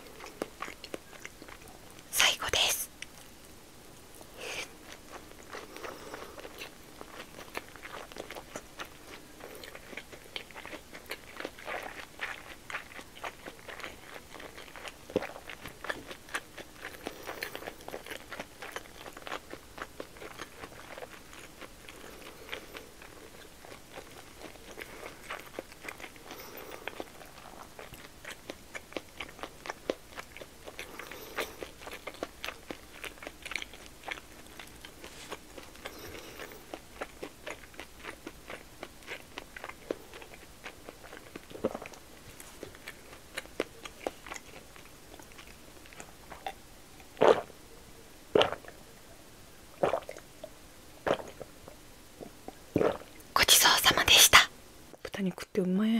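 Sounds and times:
close-miked chewing: 0.0 - 49.1, 49.8 - 55.5.

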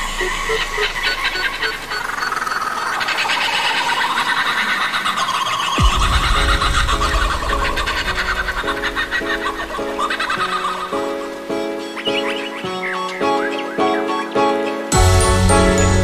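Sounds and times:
sampled bird chirping: 0.0 - 15.0
heavy bass and synth chords: 14.9 - 16.0.

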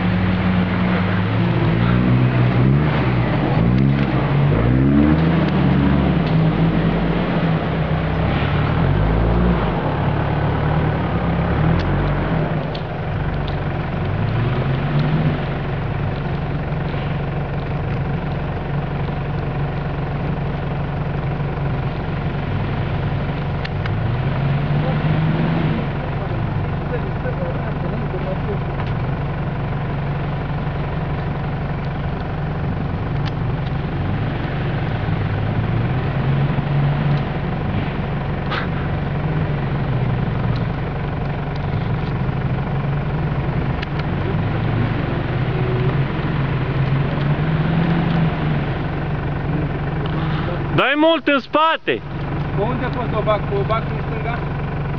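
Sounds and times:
engine revving off-road: 0.0 - 54.9.

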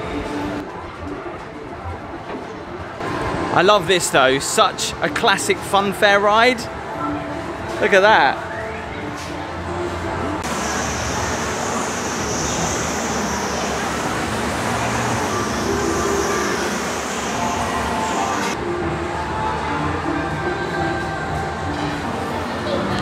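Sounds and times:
ride machinery rumble: 8.7 - 19.2
loud hiss: 10.4 - 18.6.

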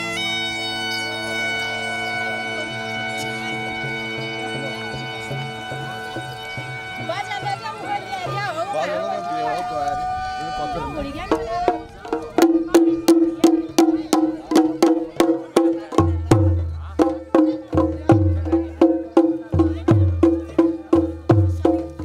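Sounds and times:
clicking percussion beat: 11.3 - 22.0.

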